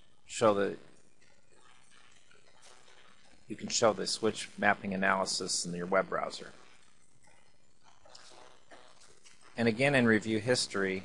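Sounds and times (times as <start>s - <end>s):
faint background hiss: 0.0s - 1.1s, 3.4s - 11.0s.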